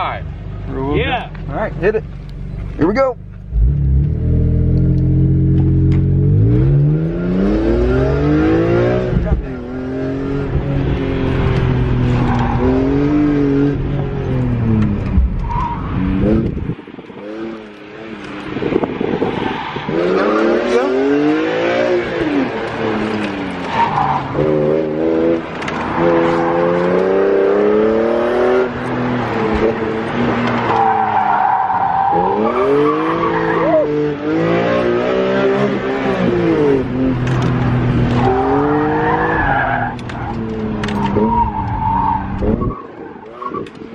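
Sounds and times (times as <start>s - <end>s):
car engine revving: 0.0s - 43.9s.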